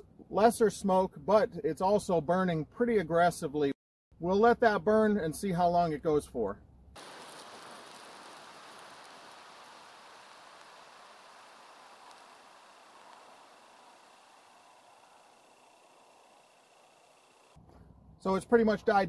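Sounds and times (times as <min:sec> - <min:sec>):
smoke element hissing: 0:07.0 - 0:17.6.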